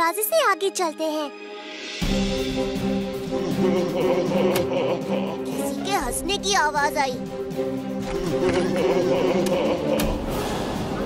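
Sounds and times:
cartoon character voice: 0.0s - 1.3s, 5.5s - 7.2s.

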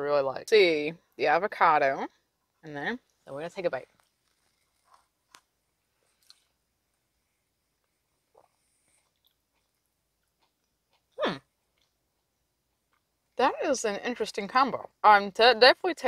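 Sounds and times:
quiet chewing mouth clicks: 4.0s - 6.6s, 7.8s - 13.1s.

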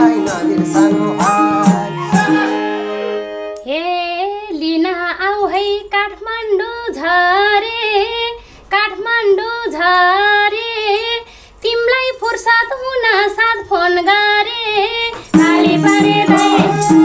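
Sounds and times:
woman singing unaccompanied: 3.6s - 17.0s
singer breathing: 8.4s - 8.7s, 11.2s - 11.6s.

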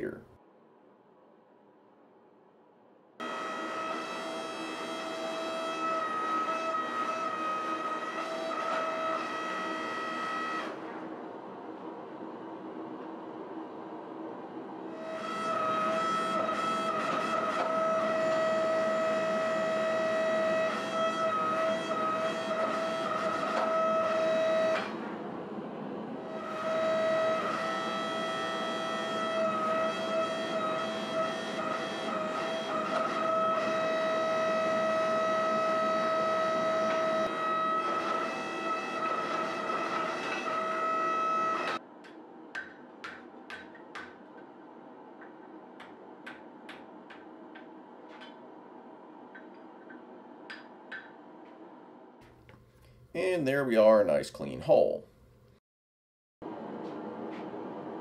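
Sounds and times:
hydraulic press pump whine: 3.2s - 41.8s.

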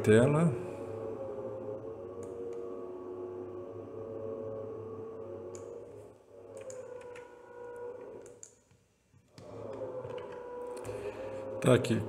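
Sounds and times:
computer mouse clicks: 5.5s - 5.8s, 6.5s - 7.3s, 8.0s - 10.9s.

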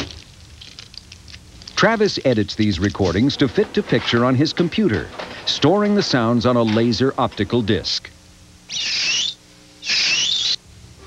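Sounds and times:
faint low hum: 0.0s - 11.0s
bursts of high hiss: 8.7s - 10.6s
wavering whistle-like tone: 8.7s - 10.6s.

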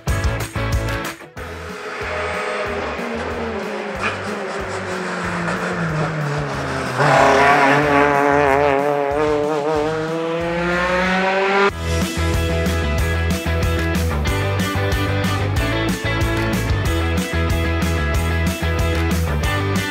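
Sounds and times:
rally car engine at high revs: 2.8s - 11.8s.

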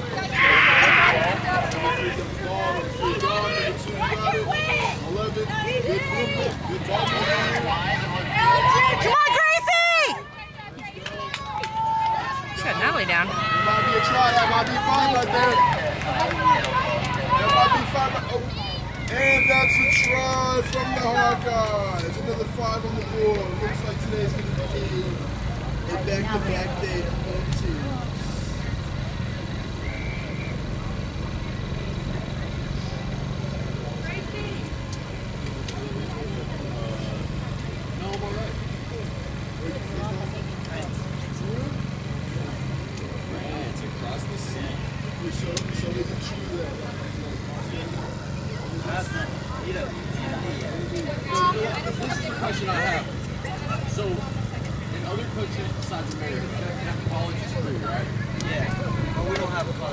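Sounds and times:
faint chatter and calls: 0.0s - 59.9s.

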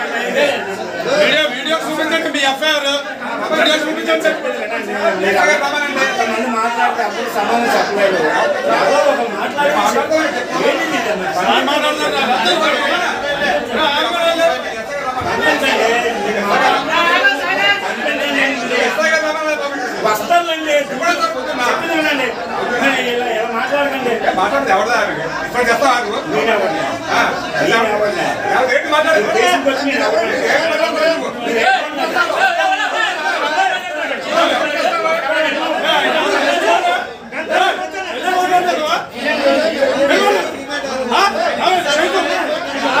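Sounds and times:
men arguing: 0.0s - 43.0s.

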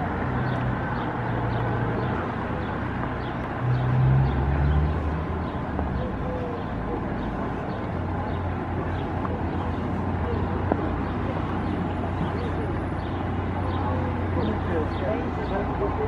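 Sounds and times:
traffic engine hum: 0.0s - 16.0s.

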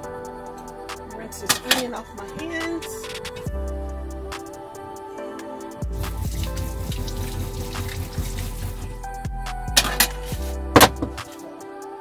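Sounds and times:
soft background music: 0.0s - 12.0s
faucet water running into sink: 6.0s - 8.9s.

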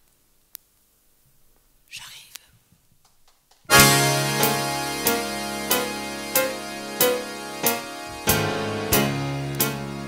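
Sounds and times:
woman whispering into microphone: 1.9s - 2.6s.

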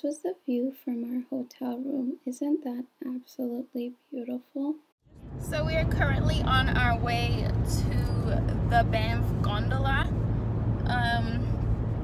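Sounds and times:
car cabin road and engine noise: 5.1s - 12.0s.

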